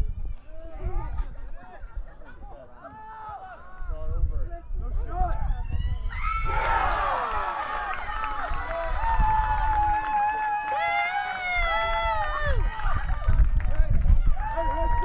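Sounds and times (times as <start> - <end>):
crowd cheering and shouting: 5.3 - 15.0.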